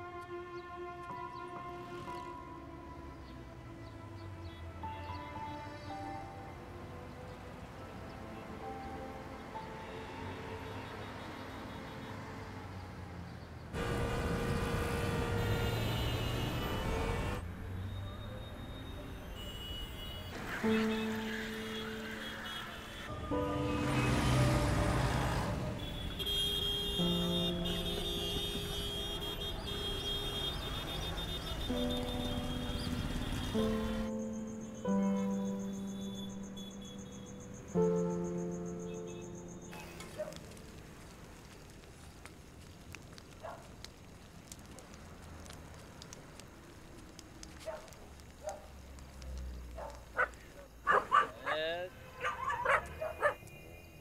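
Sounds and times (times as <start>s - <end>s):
bus passing: 0.0s - 54.0s
dog barking: 40.1s - 40.5s, 43.4s - 43.7s, 47.6s - 48.7s, 49.8s - 53.4s
dog whining yelp: 52.2s - 53.4s.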